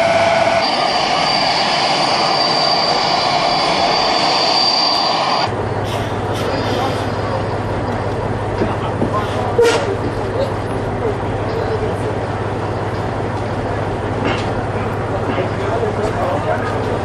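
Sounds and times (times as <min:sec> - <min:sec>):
bus engine idling: 0:05.1 - 0:17.0
men talking: 0:14.8 - 0:17.0.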